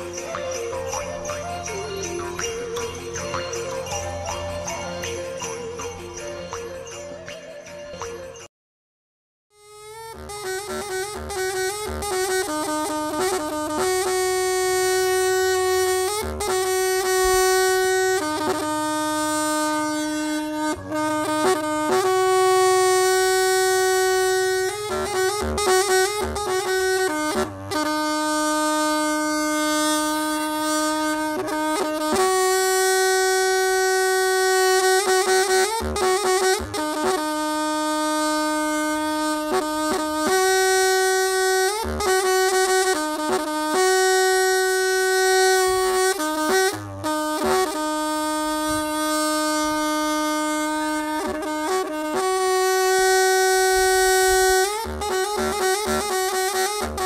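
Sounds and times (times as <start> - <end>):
bamboo wind pipe held note: 9.6 - 57.0.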